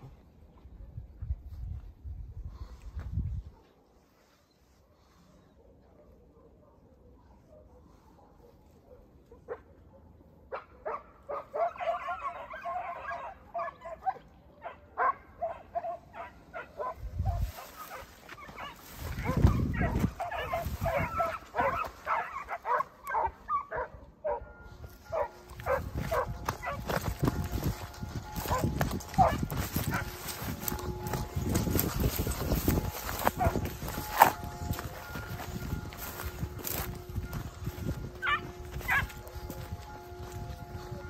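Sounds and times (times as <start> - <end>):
hounds baying and yelping: 4.7 - 41.0.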